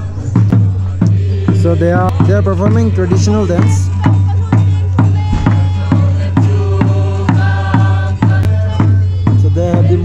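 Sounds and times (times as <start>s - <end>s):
voices chanting: 0.0s - 10.0s
large drum beating: 0.4s - 10.0s.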